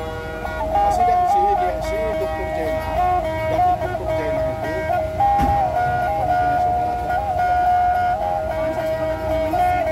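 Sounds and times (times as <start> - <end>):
plucked lutes melody: 0.0 - 9.9.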